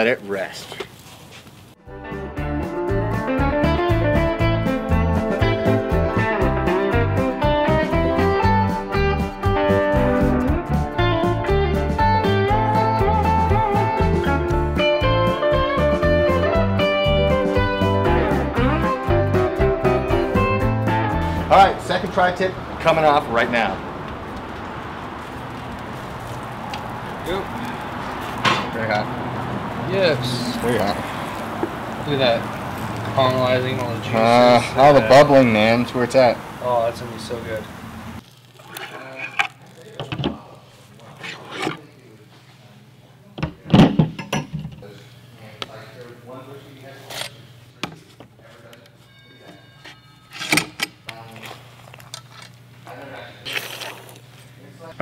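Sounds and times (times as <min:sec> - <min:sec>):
outdoor background noise: 0:00.0 - 0:01.8, 0:21.6 - 0:55.0.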